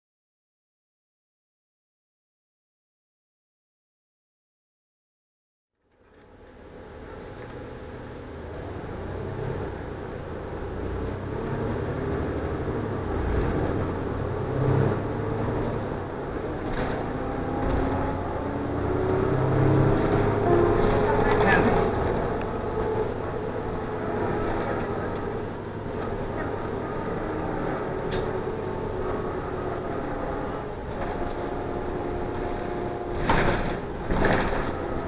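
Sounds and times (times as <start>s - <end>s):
bus engine: 5.8s - 35.0s
road noise: 5.8s - 35.0s
indistinct voices: 19.7s - 28.4s.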